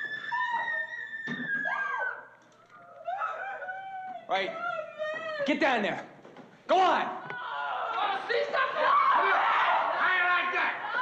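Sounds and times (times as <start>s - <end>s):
woman screaming: 0.0s - 5.5s
moaning and crying voices: 0.0s - 5.6s.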